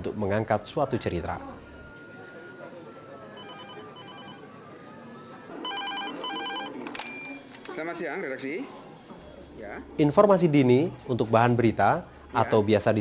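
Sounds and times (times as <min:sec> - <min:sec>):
faint murmur of voices: 0:00.0 - 0:13.0
telephone double ring: 0:05.6 - 0:07.4.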